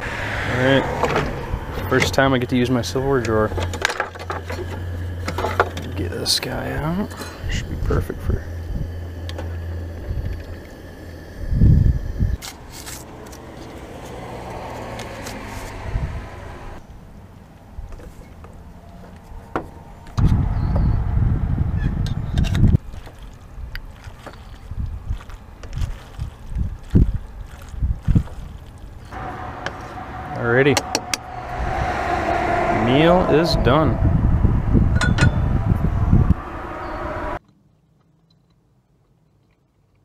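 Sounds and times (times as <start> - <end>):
low rumble: 0.0 - 12.4, 20.2 - 22.8, 29.1 - 37.4.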